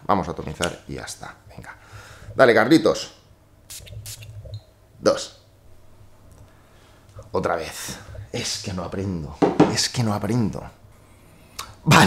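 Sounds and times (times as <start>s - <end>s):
perfume atomizer hisses: 3.7s - 4.5s.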